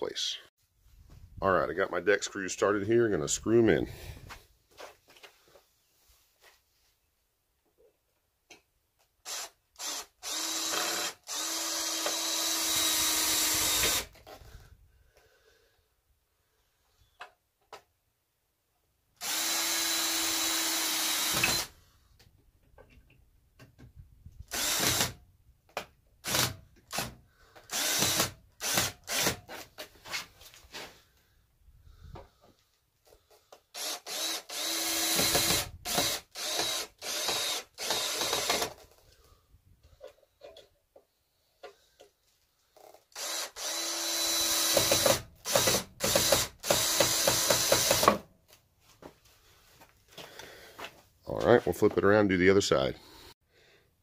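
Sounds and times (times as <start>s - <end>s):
cordless drill driving screws: 9.2s - 14.5s, 19.2s - 21.8s, 24.5s - 25.2s, 26.2s - 29.6s, 33.7s - 39.0s, 42.8s - 48.2s.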